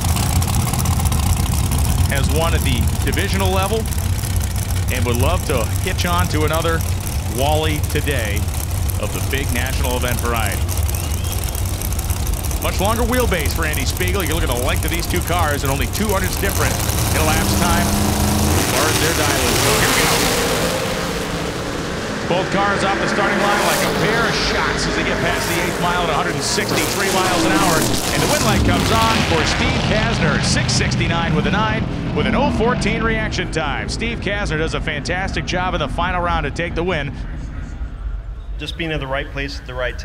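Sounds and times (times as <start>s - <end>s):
race engine idling: 0.0s - 40.0s.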